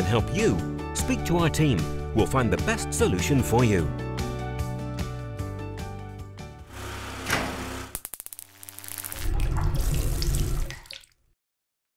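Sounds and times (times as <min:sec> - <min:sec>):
background music: 0:00.0 - 0:06.8.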